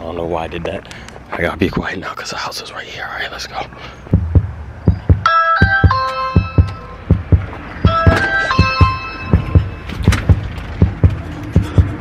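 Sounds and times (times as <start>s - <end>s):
low thudding beat: 4.1s - 12.0s
doorbell chime tune: 5.3s - 7.0s, 7.9s - 10.1s.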